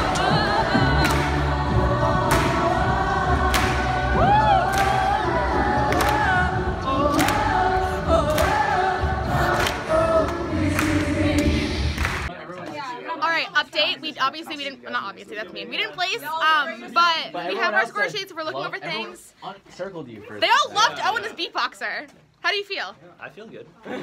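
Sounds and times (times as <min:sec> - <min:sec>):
a cappella group singing: 0:00.0 - 0:12.3.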